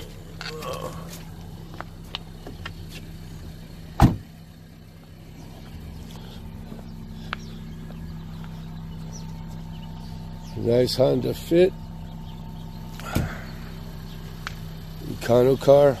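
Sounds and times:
car engine idling: 0.0 - 16.0
car door shutting: 3.9 - 4.3, 13.0 - 13.5.

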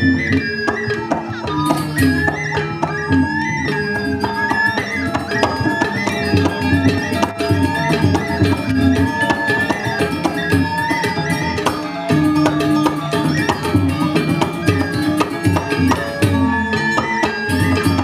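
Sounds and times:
percussion: 0.0 - 18.0
struck metallophone notes: 0.0 - 18.0
wavering high melody: 0.0 - 18.0.

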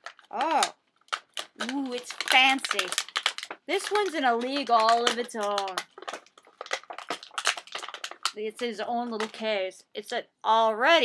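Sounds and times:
plastic toy pieces clicking: 0.0 - 9.4.

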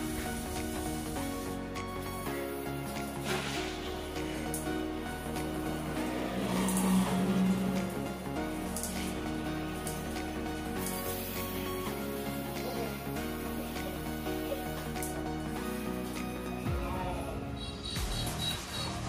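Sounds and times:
shower spraying onto tiles: 0.0 - 16.3
background music: 0.0 - 19.0.

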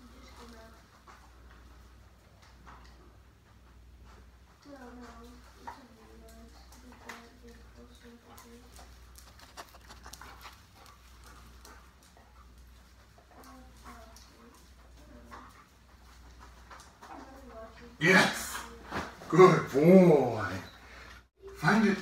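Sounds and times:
dog sniffing: 7.9 - 16.7
dog claws clicking on tile: 8.2 - 12.2.

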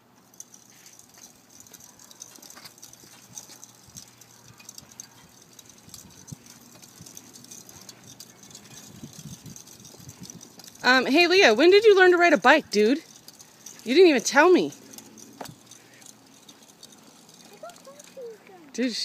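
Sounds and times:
bicycle rattling on concrete: 0.0 - 19.0.

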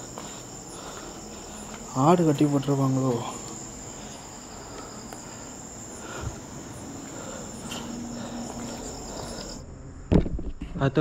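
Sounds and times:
crickets trilling: 0.0 - 10.1
faint scuffs: 6.2 - 9.6.

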